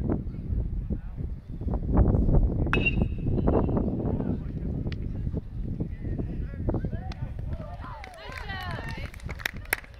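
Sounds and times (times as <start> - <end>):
wind rumble on microphone: 0.0 - 9.9.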